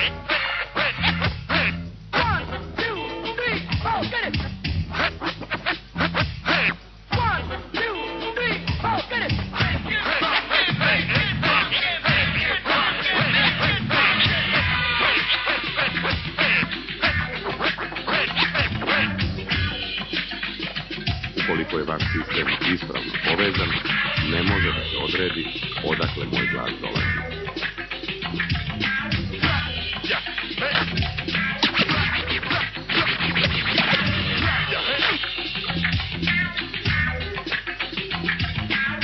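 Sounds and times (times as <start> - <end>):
turntable scratching: 0.0 - 39.0
drum beat: 0.8 - 39.0.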